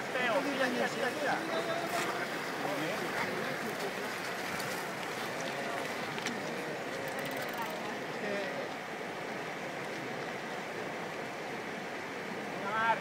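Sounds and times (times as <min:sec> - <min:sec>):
bike wheels splashing through water: 0:00.0 - 0:08.4
river rushing over rapids: 0:00.0 - 0:13.0.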